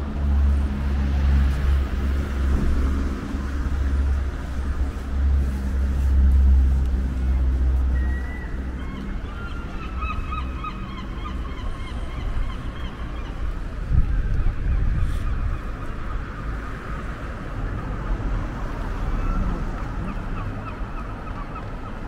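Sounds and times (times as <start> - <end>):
street noise rumble: 0.0 - 22.0.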